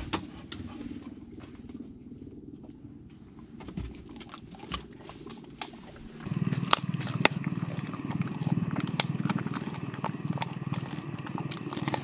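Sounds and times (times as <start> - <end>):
low pulsing rumble: 0.0 - 12.0
dog chewing a crunchy treat: 3.6 - 12.0.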